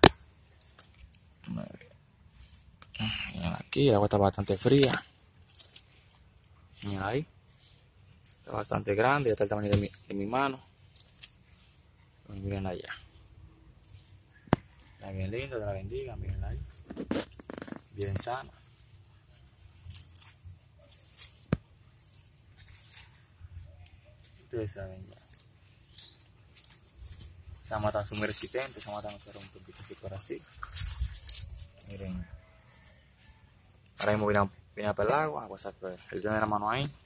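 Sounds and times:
rustling of plant leaves: 2.3 - 37.0.

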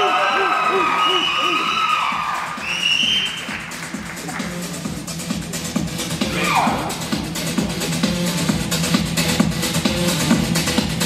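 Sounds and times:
audience cheering and screaming: 0.0 - 3.6
upbeat dance music: 0.0 - 11.0.

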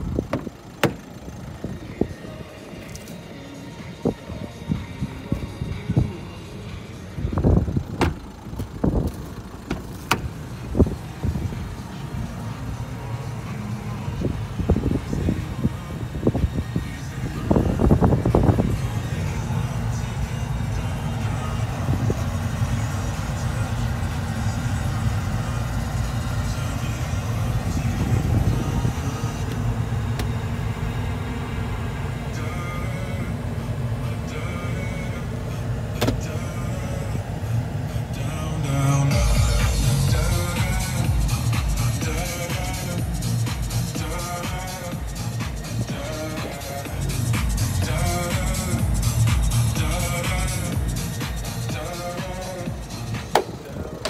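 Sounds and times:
car engine starting and idling: 0.0 - 54.0.

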